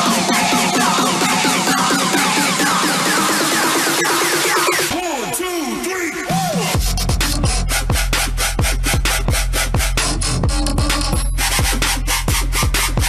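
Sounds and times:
kick drum on fast beat: 6.5s - 13.0s
sustained deep bass: 6.8s - 13.0s.

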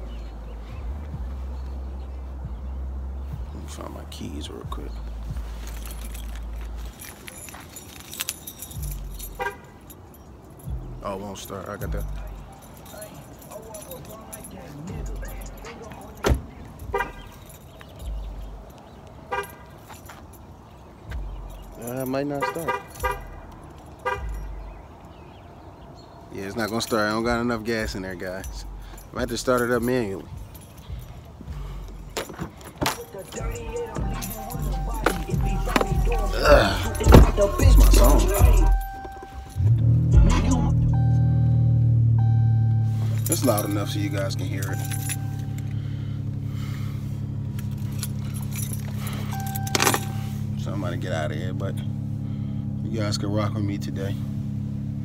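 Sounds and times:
car keys jangling: 0.0s - 55.0s
car engine failing to start: 30.9s - 51.0s
brief beeps: 40.9s - 43.0s.

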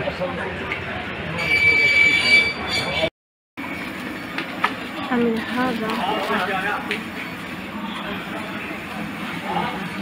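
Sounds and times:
busy shop background noise: 0.0s - 10.0s.

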